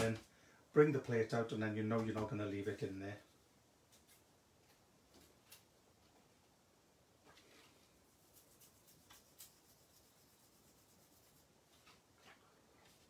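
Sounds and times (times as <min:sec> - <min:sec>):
light scratchy rubs: 0:07.3 - 0:13.0.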